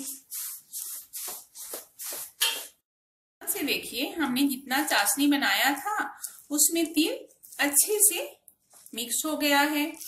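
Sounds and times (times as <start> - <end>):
wooden spatula scraping in syrup: 0.0 - 2.8.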